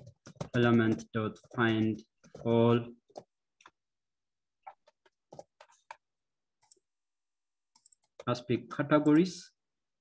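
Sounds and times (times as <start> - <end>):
keyboard and mouse clicks: 0.0 - 2.5, 4.6 - 6.9, 7.7 - 9.2.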